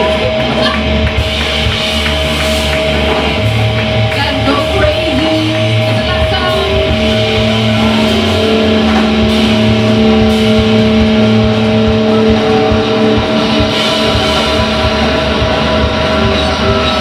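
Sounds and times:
live rock band playing: 0:00.0 - 0:17.0
sustained electric guitar notes: 0:00.0 - 0:17.0.

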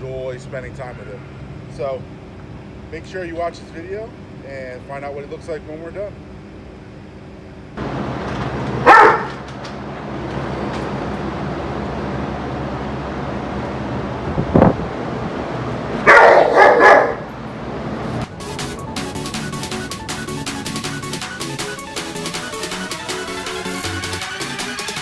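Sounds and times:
dog barking: 0:08.8 - 0:09.4, 0:16.0 - 0:17.3.

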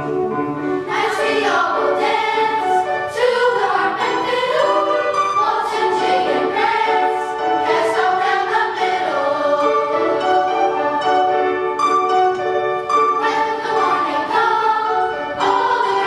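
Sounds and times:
choir of young voices singing: 0:00.6 - 0:11.5, 0:12.9 - 0:16.0.

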